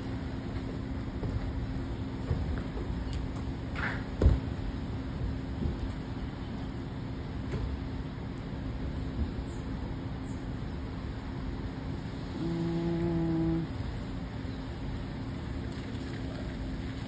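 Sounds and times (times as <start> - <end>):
low horn-like tone: 12.3 - 13.7
rain: 15.1 - 17.0.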